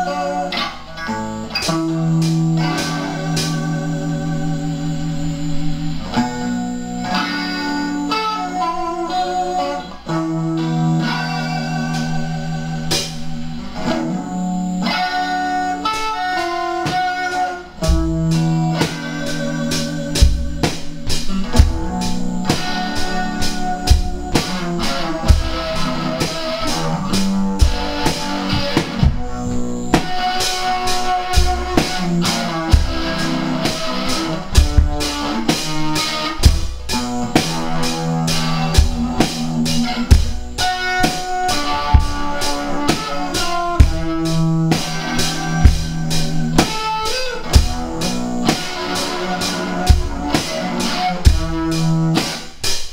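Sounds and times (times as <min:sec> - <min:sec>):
bass guitar: 0:00.0 - 0:52.9
drum kit kick and cymbals: 0:00.0 - 0:52.9
electric guitar with effects: 0:00.0 - 0:52.9.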